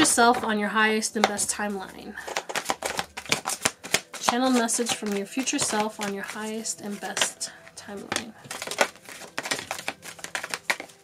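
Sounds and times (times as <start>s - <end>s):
cards clicking and tapping on table: 2.2s - 11.0s.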